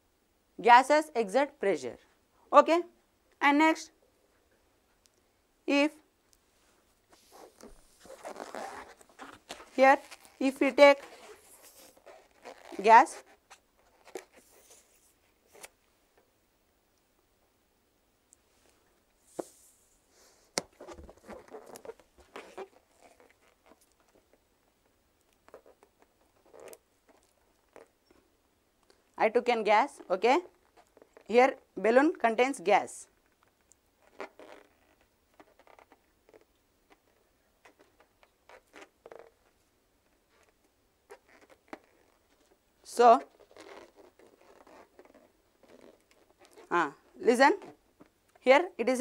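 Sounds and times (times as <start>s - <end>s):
rubber squeaks and crackles: 7.1s - 15.8s, 20.2s - 29.1s, 29.8s - 31.8s, 33.0s - 48.4s.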